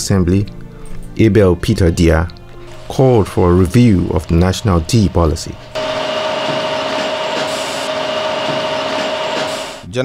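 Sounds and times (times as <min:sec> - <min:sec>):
factory machinery humming: 0:02.6 - 0:09.9.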